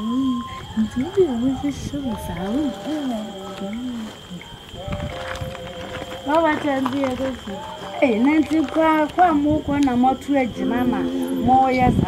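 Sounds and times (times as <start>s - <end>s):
women talking: 0.0s - 4.5s, 6.3s - 12.0s
steady high thin tone: 10.5s - 12.0s.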